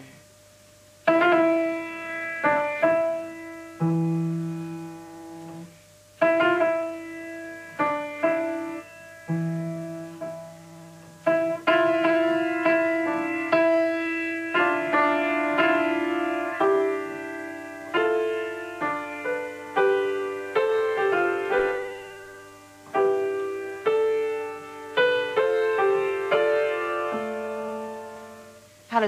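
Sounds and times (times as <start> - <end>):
grand piano chords: 1.0 - 29.0.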